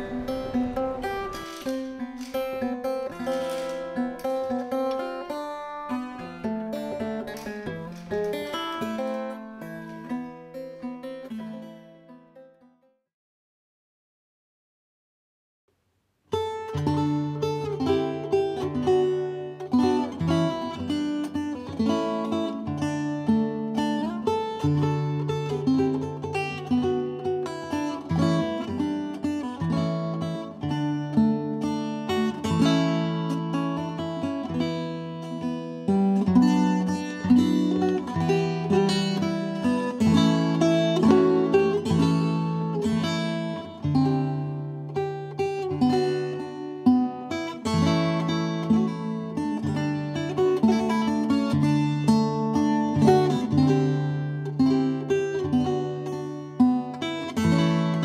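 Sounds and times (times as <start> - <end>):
plucked guitar melody: 0.0 - 12.9, 16.3 - 58.0.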